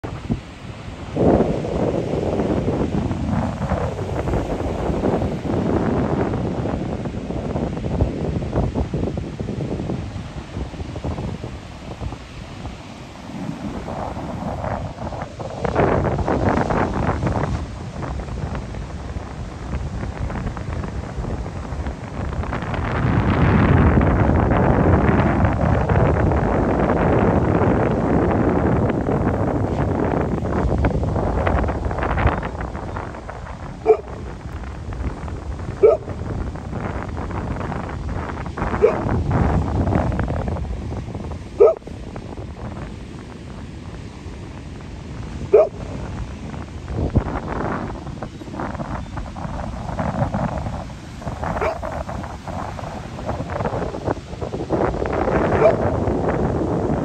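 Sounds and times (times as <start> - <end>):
ocean surf breaking: 0.0 - 57.0
wind buffeting microphone: 0.0 - 57.0.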